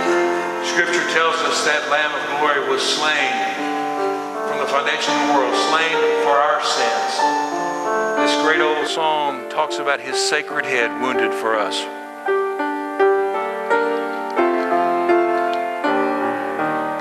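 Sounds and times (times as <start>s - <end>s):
piano playing hymn chords: 0.0s - 17.0s
man speaking: 0.6s - 7.4s, 8.2s - 12.0s.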